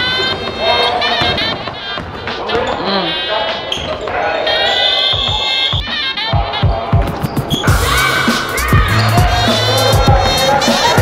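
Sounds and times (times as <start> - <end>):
voices in a gym: 0.0 - 11.0.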